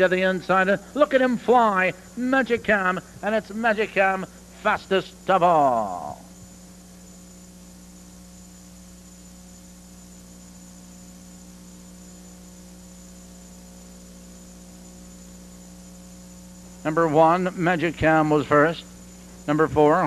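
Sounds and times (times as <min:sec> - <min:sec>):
electrical hum: 0:00.0 - 0:20.0
faint high whine: 0:00.0 - 0:20.0.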